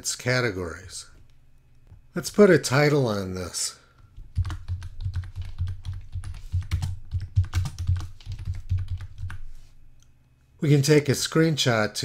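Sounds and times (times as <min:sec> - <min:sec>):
computer keyboard typing: 0:04.2 - 0:09.5.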